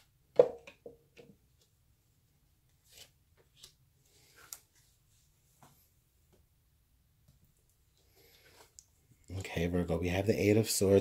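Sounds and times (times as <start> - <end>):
cards laid on cloth table: 2.6 - 6.5, 7.2 - 9.0.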